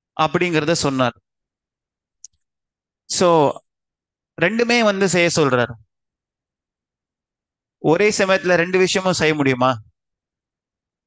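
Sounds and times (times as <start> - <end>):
man speaking: 0.2 - 1.1, 3.1 - 3.6, 4.4 - 5.8, 7.8 - 9.8.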